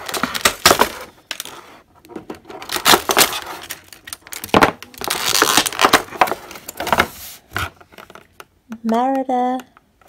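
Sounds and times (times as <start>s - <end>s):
plastic packaging crackling: 0.0s - 1.6s, 2.3s - 7.1s.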